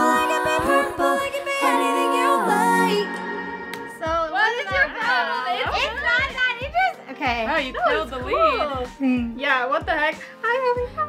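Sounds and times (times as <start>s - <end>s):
women singing a cappella chord: 0.0s - 4.1s.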